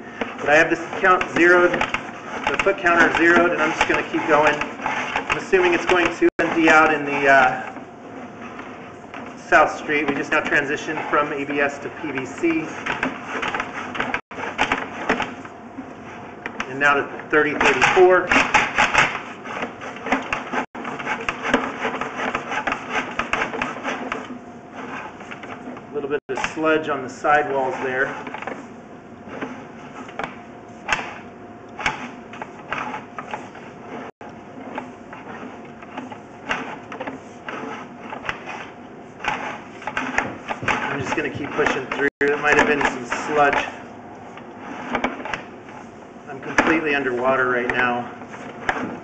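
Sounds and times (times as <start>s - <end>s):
push cable clicking and scraping in pipe: 0.0s - 49.0s.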